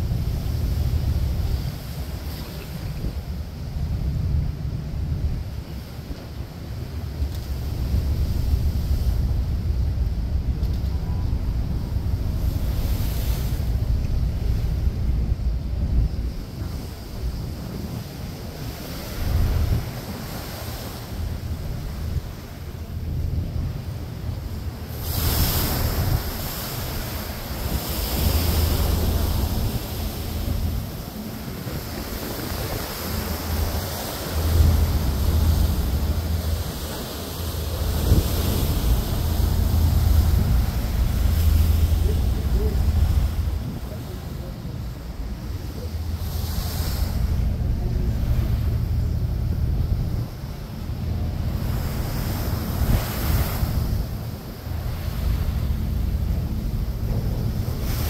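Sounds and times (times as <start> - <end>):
choppy water rushing: 0.0 - 58.0
wind buffeting microphone: 0.0 - 58.0.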